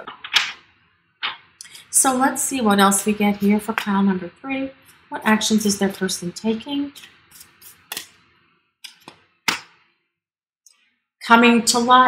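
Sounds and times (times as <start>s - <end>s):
cards sliding and rustling: 7.0s - 8.2s, 8.9s - 9.8s
card snaps: 8.8s - 9.8s.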